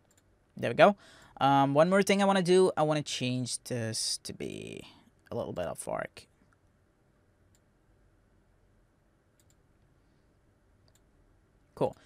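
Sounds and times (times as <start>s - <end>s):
computer mouse clicks: 9.4s - 9.6s, 10.8s - 11.1s.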